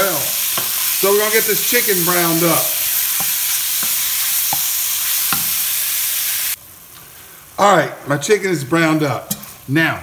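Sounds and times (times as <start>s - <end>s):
chicken sizzling in grease: 0.0s - 10.0s
wooden spatula knocking: 3.0s - 4.7s.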